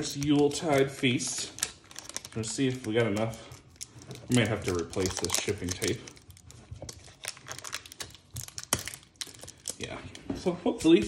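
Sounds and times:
tape being handled: 0:00.0 - 0:10.3.

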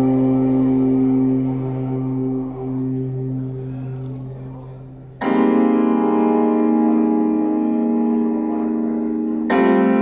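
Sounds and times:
band holding sustained chord: 0:00.0 - 0:10.0.

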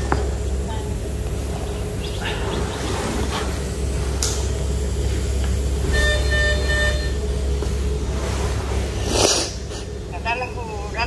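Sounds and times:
low rumble and hum: 0:00.0 - 0:11.0
patient monitor beeps: 0:05.9 - 0:07.2.

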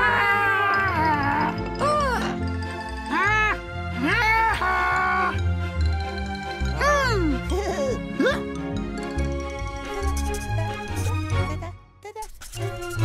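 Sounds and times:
bouncy cartoon music: 0:00.0 - 0:13.0.

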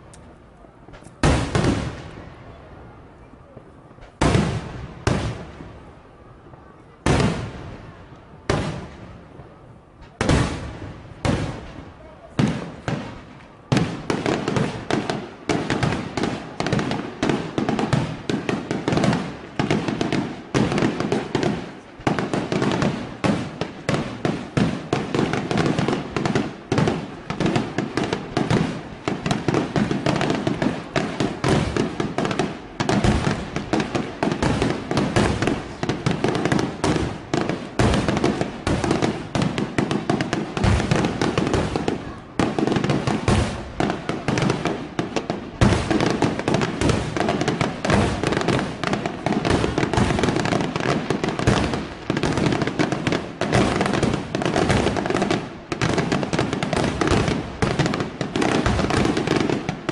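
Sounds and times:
fireworks bursting and crackling: 0:00.0 - 0:59.9.

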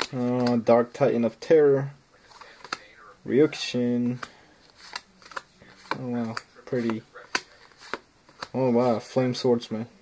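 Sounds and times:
cards sliding and snapping: 0:00.0 - 0:00.6, 0:02.3 - 0:03.0, 0:04.1 - 0:09.0.

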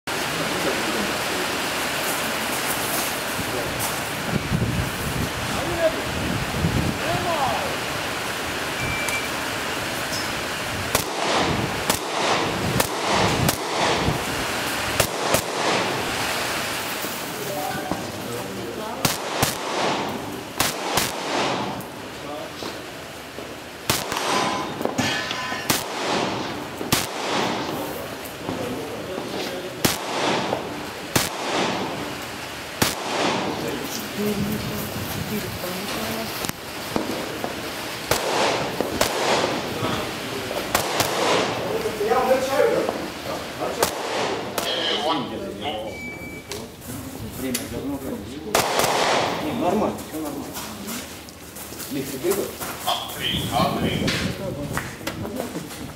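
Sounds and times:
rifle shots with echo: 0:10.9 - 0:16.2, 0:19.0 - 0:22.0, 0:23.8 - 0:34.0, 0:36.9 - 0:40.0, 0:40.6 - 0:43.0, 0:43.6 - 0:45.0, 0:48.5 - 0:49.8.

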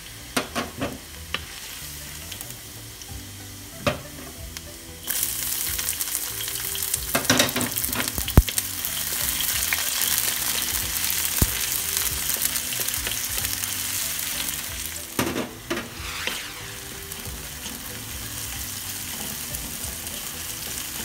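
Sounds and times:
onion sizzling in hot oil: 0:00.0 - 0:21.0.

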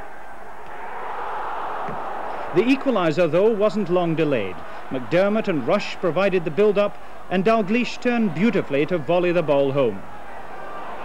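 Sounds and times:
stadium crowd voices: 0:00.0 - 0:11.0.

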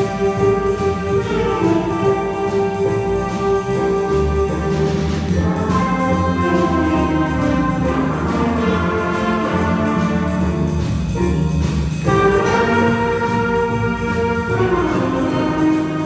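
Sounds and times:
jazz band playing a shuffle: 0:00.0 - 0:16.0.

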